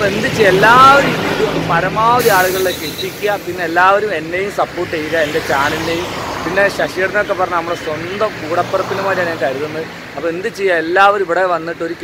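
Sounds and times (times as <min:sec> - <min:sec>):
low hum of road traffic: 0:00.0 - 0:12.0
man talking: 0:00.0 - 0:12.0.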